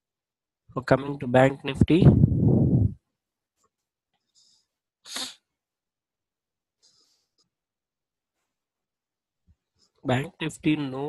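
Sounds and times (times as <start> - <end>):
faint breath: 4.3 - 4.8, 6.8 - 7.5
sharp burst of breath: 5.1 - 5.4.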